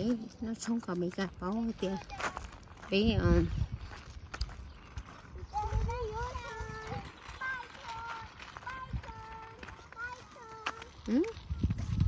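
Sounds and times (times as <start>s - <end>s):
young child sing-song voice: 5.4s - 12.0s.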